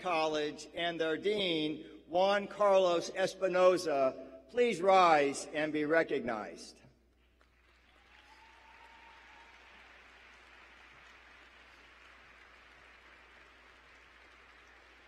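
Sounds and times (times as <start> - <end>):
crowd applause in hall: 7.2 - 15.0.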